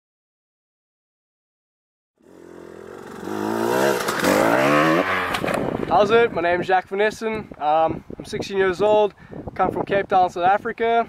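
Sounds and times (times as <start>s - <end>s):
motorcycle revving: 2.2s - 6.3s.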